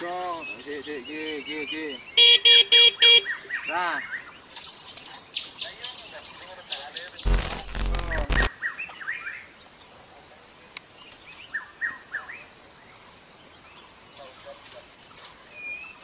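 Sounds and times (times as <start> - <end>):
small birds chirping: 0.0 - 2.4, 3.2 - 9.8
loud burst of noise: 7.3 - 8.5.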